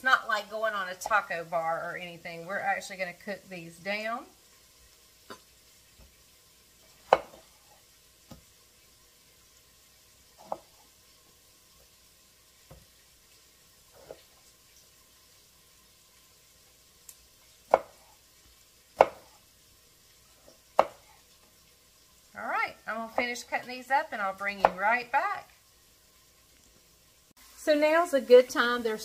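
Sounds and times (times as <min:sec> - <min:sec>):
knife chopping on wooden board: 0:07.0 - 0:07.5, 0:10.4 - 0:10.8, 0:17.7 - 0:18.1, 0:19.0 - 0:19.4, 0:20.4 - 0:21.2.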